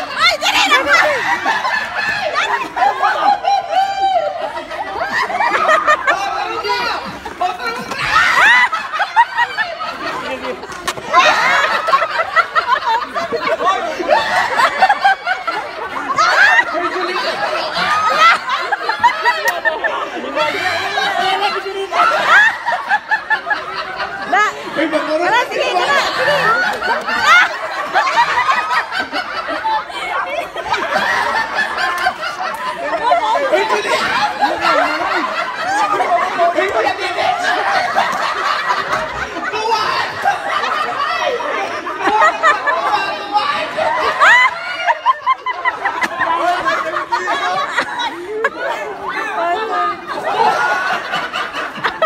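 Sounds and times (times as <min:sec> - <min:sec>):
bursts of giggling: 0:00.0 - 0:52.0
people laughing: 0:00.0 - 0:52.0.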